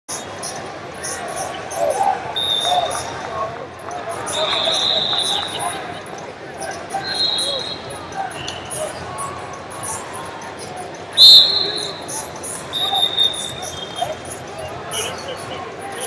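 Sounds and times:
murmur of crowd voices: 0:00.1 - 0:16.0
referee whistles blowing: 0:02.4 - 0:03.0, 0:04.3 - 0:05.6, 0:07.0 - 0:08.0, 0:11.2 - 0:14.2.

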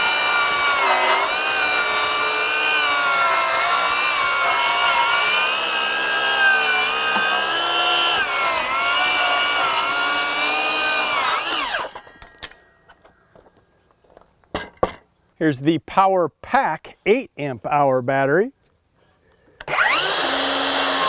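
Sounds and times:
circular saw cutting wood: 0:00.0 - 0:12.0, 0:19.6 - 0:21.0.

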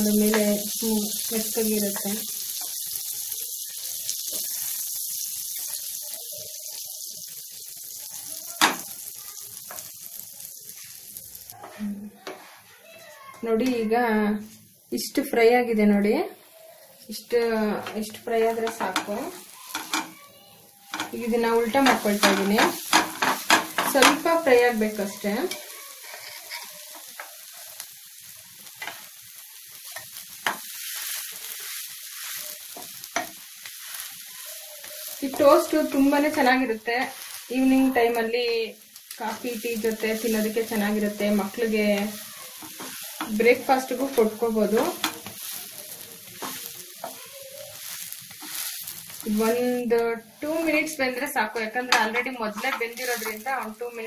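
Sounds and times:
toast sizzling in butter: 0:00.0 - 0:54.0
spatula clicking against pan: 0:18.6 - 0:20.2, 0:20.9 - 0:21.2.

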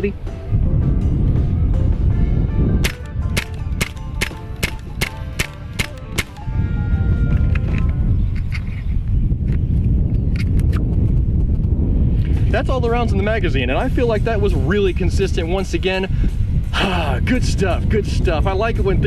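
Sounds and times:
background music: 0:00.0 - 0:08.2, 0:13.6 - 0:17.8
air rifle shots: 0:02.8 - 0:06.5.

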